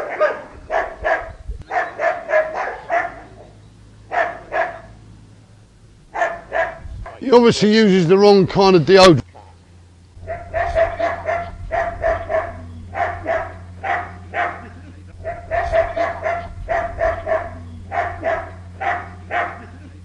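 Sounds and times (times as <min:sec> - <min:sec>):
dog barking: 0:00.0 - 0:05.0, 0:06.1 - 0:07.2, 0:10.2 - 0:19.9
low hum: 0:00.0 - 0:20.0.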